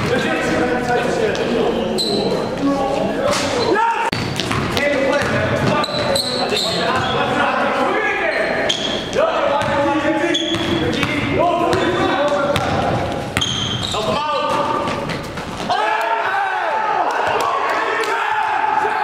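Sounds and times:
sneakers squeaking: 0.0 - 15.8.

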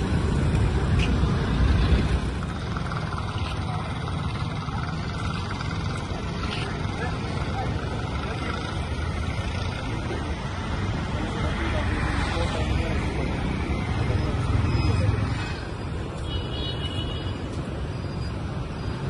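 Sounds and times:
motor vehicles passing: 0.0 - 19.0
people talking indistinctly: 3.0 - 15.6.

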